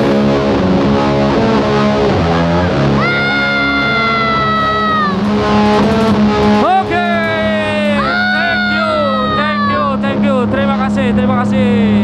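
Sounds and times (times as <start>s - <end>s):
electric guitar feedback: 0.0s - 11.3s
low amp hum: 0.0s - 12.0s.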